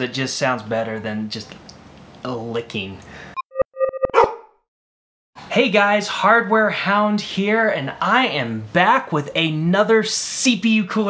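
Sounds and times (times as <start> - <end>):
short electronic blips: 3.4 - 4.3
dog bark: 4.2 - 4.5.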